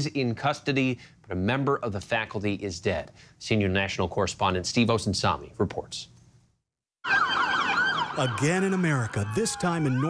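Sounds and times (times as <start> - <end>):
police siren yelping: 7.0 - 10.0.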